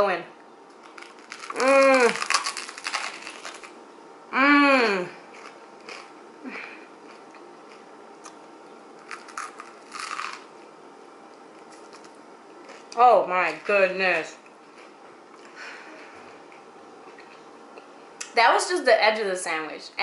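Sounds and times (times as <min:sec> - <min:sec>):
chewing a toasted sandwich: 0:00.7 - 0:03.8, 0:05.3 - 0:10.7, 0:11.3 - 0:13.0, 0:14.4 - 0:15.6
crisp crunches of chewing: 0:00.8 - 0:03.8, 0:05.3 - 0:10.6
woman humming with delight: 0:04.3 - 0:05.2.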